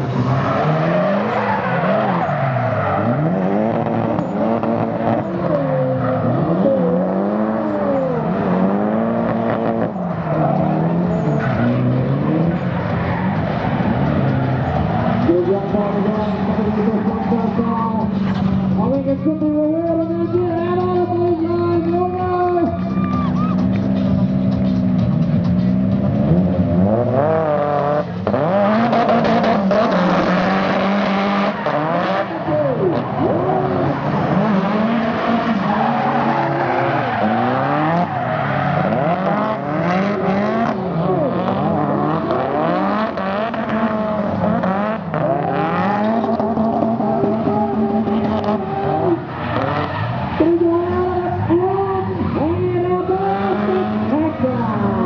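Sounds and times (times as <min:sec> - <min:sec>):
car engines revving: 0:00.0 - 0:55.0
tyres squealing: 0:30.0 - 0:42.6.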